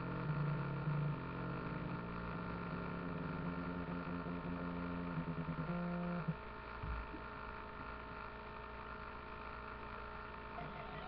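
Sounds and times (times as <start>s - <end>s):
faint steady drone: 0.0s - 11.0s
low hum with overtones: 0.0s - 11.0s.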